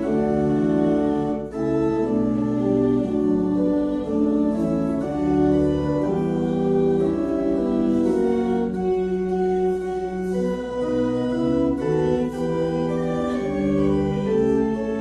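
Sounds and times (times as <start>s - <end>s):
organ playing hymn chords: 0.0s - 15.0s.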